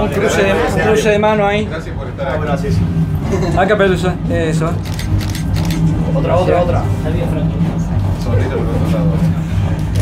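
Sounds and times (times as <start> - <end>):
low hum: 0.0 - 10.0
murmur of voices: 0.0 - 10.0.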